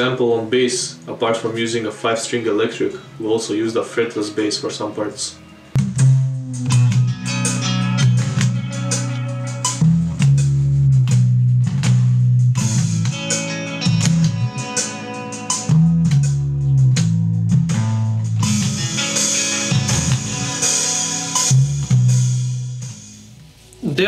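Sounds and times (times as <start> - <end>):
fretless bass low notes: 5.7 - 24.0
progressive metal music: 5.8 - 23.1.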